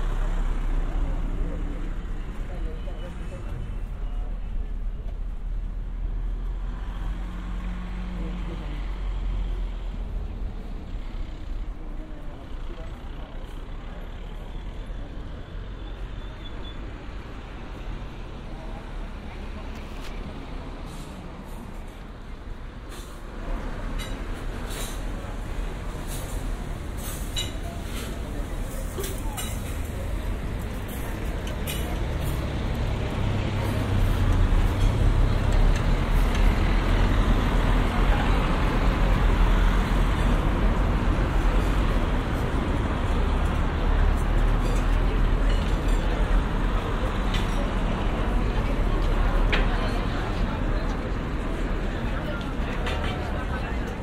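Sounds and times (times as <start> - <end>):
road traffic rumble: 0.0 - 54.0
faint voices: 17.1 - 54.0.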